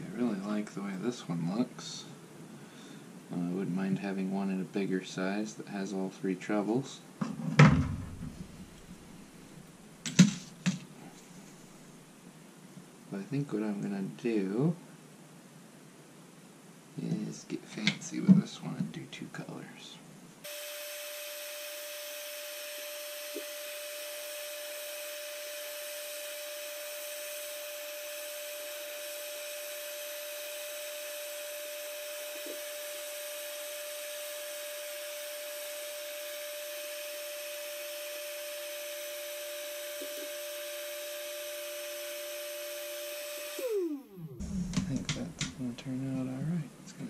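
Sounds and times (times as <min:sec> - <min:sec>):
heat gun fan whine: 0:20.4 - 0:46.4.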